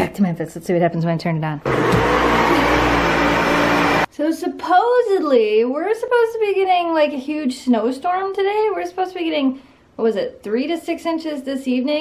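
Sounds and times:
vacuum cleaner running: 1.7 - 4.1.

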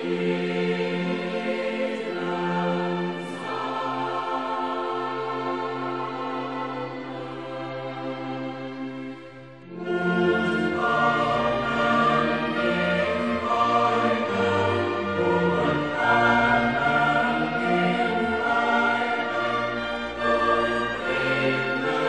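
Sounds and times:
church choir singing: 0.0 - 22.0
orchestra playing: 0.0 - 22.0.

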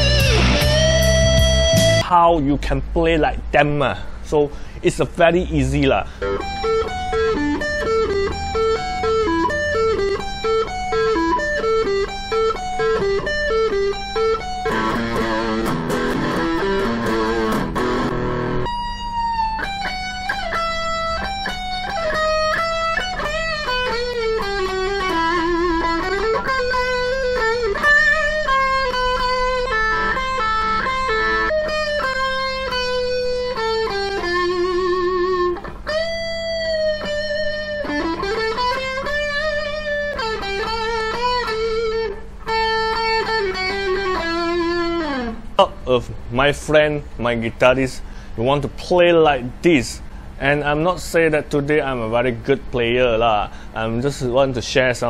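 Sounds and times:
electric guitar rock lead: 0.0 - 2.0, 6.1 - 45.8.

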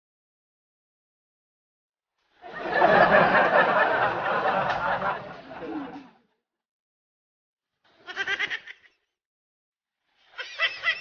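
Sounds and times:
woman's high-pitched laugh: 10.4 - 11.0.

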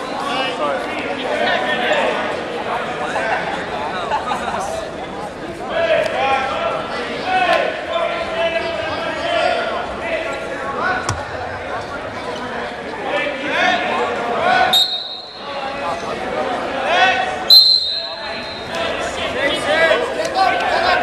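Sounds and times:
people shouting in a gymnasium: 13.1 - 21.0
referee whistle blast: 14.7 - 15.5, 17.5 - 18.7.

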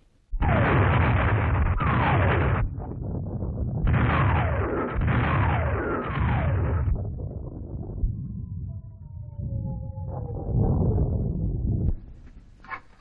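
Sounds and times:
rumble of shell bursts: 0.3 - 13.0.

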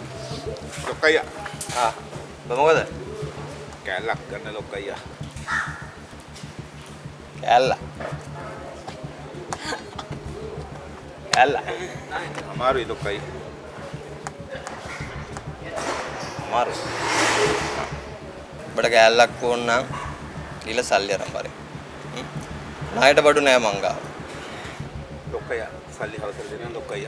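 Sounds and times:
crow cawing: 5.4 - 6.0.

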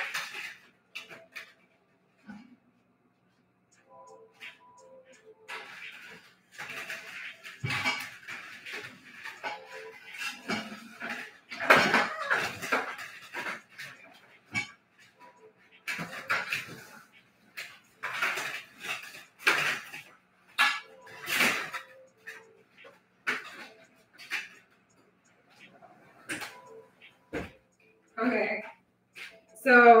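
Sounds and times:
objects clattering and knocking: 0.0 - 2.6, 3.7 - 30.0
objects rustling: 3.7 - 30.0.

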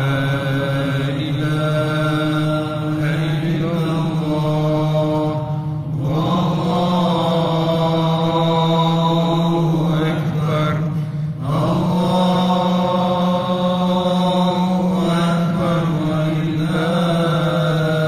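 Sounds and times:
man chanting into a microphone: 0.0 - 18.0
steady low drone: 0.0 - 18.0.

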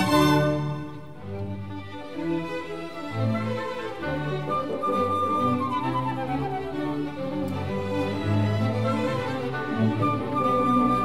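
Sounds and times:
orchestra playing classical music: 0.0 - 11.0.

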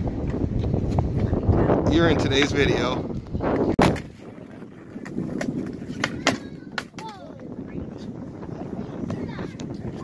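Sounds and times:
skateboard rolling on concrete: 0.0 - 10.0
wind rumbling on microphone: 0.0 - 10.0
skateboard clacks: 4.9 - 7.5.

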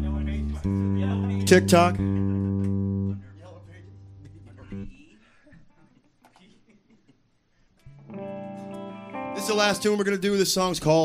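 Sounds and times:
electric guitar and bass low note: 0.0 - 4.9.

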